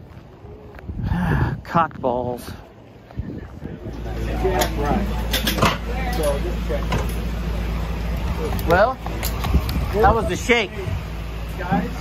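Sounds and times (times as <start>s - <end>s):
indistinct voices talking: 0.0s - 12.0s
steady low rumble: 0.0s - 12.0s.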